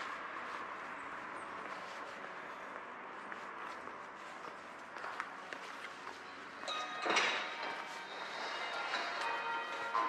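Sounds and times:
church bells ringing: 6.6 - 10.0.

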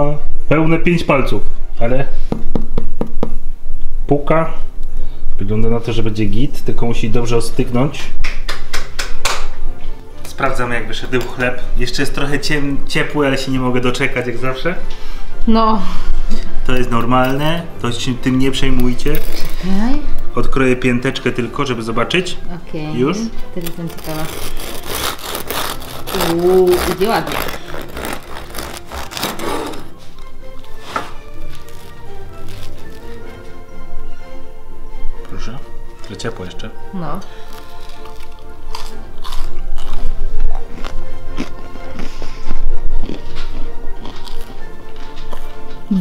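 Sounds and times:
background music: 0.0 - 46.0
bread knife sawing through crust: 23.9 - 30.0
man chewing crusty bread: 23.9 - 33.6, 37.3 - 45.9.

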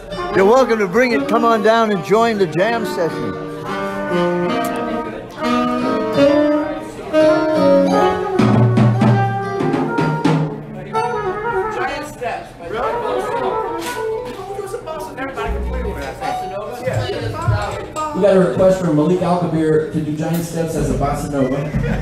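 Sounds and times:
live jazz band: 0.0 - 22.0.

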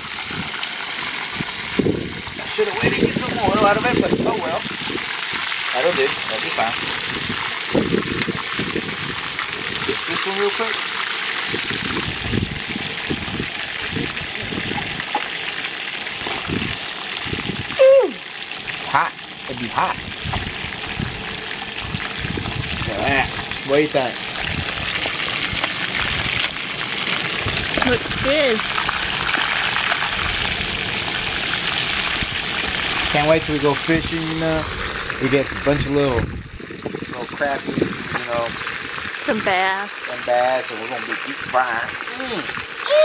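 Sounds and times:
fish sizzling in hot oil: 0.0 - 43.0.

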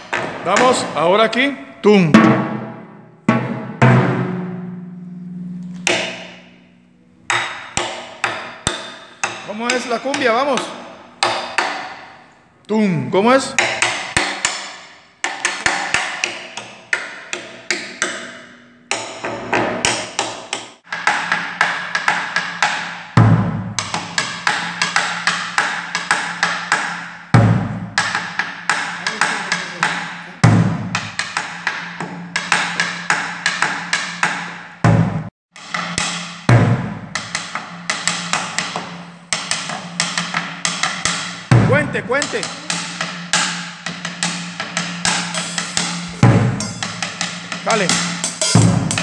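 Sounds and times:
deep drumhead strokes: 2.0 - 6.7, 38.6 - 49.0.

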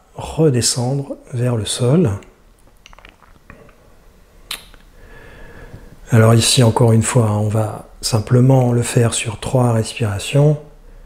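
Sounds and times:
faint soft hiss: 0.0 - 11.0
short sharp click: 4.5 - 4.8.

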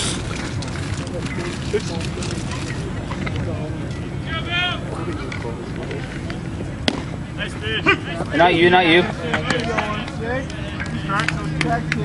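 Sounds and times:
spectator chatter: 0.0 - 12.0
sharp pop: 6.8 - 7.1.

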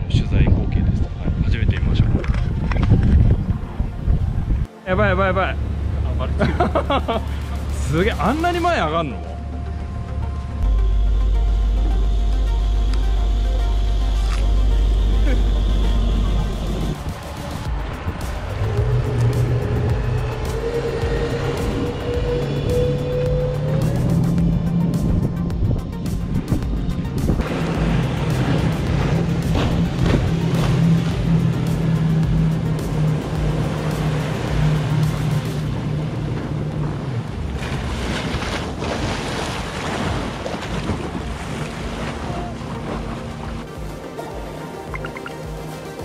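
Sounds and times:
wind on microphone: 0.0 - 4.7, 16.3 - 43.6
water rushing: 1.2 - 46.0
outboard motor running: 5.1 - 45.6.

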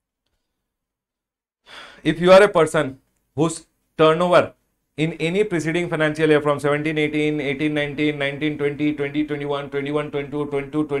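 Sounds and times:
man breathing: 1.6 - 2.1.

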